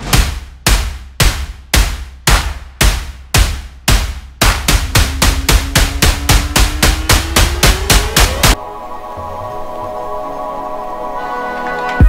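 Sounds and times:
heavy percussive hits: 0.0s - 8.6s
rising tone: 4.9s - 11.2s
ambient music chord: 5.0s - 12.0s.

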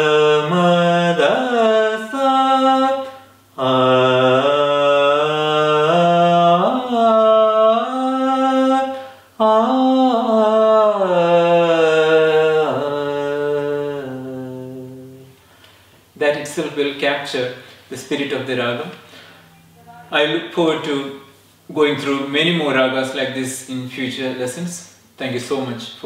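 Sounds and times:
man singing a vocal scale: 0.0s - 15.4s.

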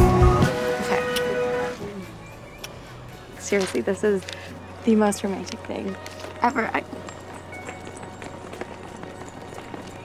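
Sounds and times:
low outdoor background hum: 0.9s - 10.0s
footsteps of runners on track: 3.5s - 10.0s.

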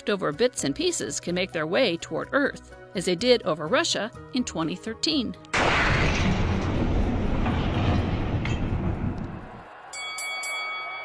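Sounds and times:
airburst boom rumble: 5.6s - 9.7s.

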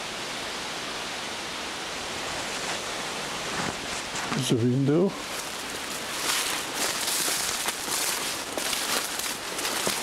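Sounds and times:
shrubs and grass rustling: 2.2s - 10.0s.

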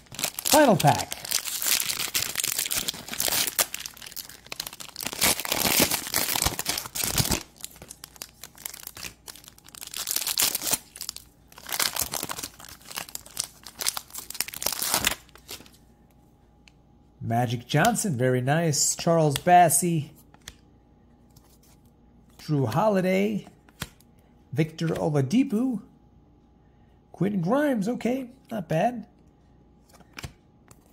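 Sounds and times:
foil wrapper tearing and crinkling: 0.0s - 15.6s.

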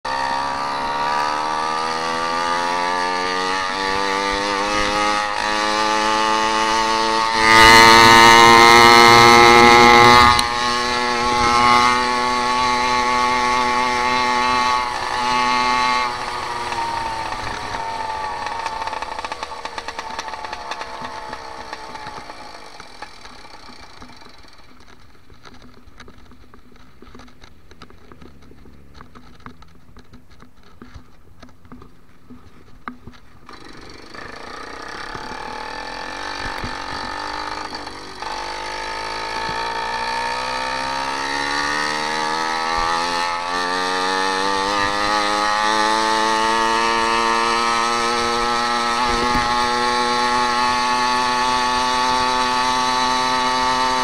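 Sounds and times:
faint road noise: 0.0s - 54.0s
small engine of motorized bicycle: 0.1s - 54.0s.

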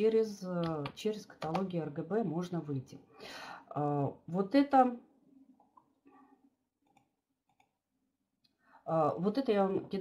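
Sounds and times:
woman's voice: 0.0s - 5.1s, 8.8s - 10.0s.

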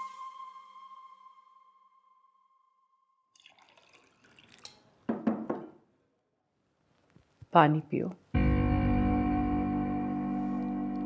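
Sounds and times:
water poured into glass: 3.3s - 5.0s.

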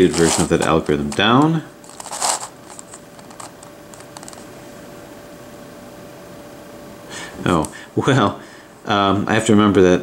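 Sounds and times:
faint steady hum: 0.0s - 10.0s
plastic puzzle clicking and rattling: 0.1s - 4.4s.

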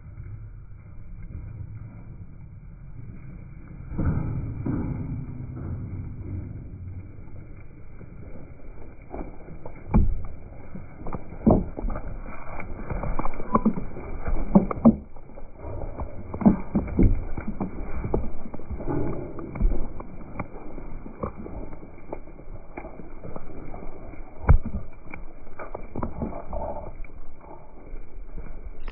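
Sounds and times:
sheep hooves thudding on mud: 5.6s - 28.9s.

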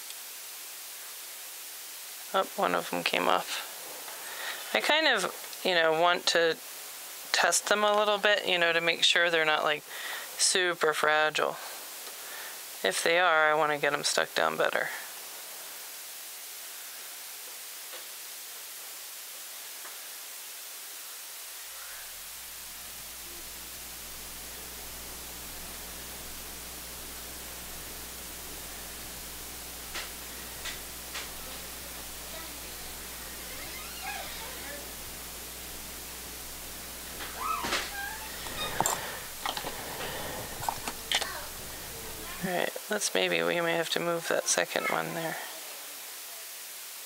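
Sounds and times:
low electrical hum: 0.0s - 45.3s
steady hiss: 0.0s - 47.0s
handling noises: 37.1s - 42.3s.

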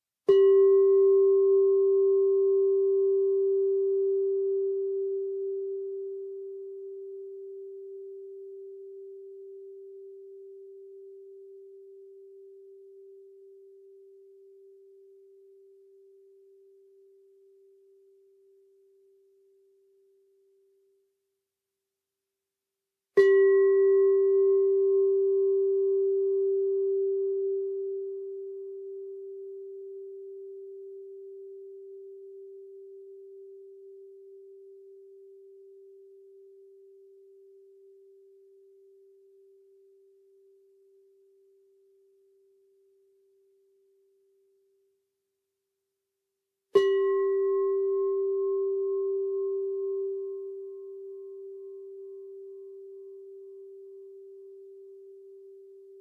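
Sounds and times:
singing bowl ringing: 0.3s - 19.9s, 23.2s - 43.0s, 46.8s - 56.0s.

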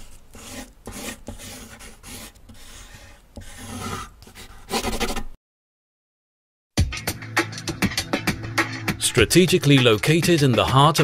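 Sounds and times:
pencil sketching on paper: 0.0s - 5.4s.

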